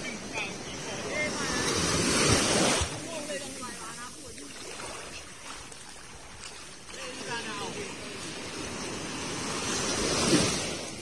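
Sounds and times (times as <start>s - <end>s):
surf washing on sandy beach: 0.0s - 11.0s.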